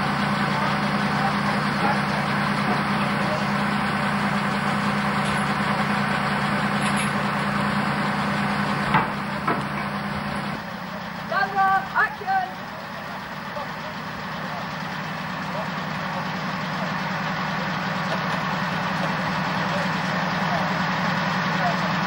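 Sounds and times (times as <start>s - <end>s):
heavy crane engine idling: 0.0s - 22.0s.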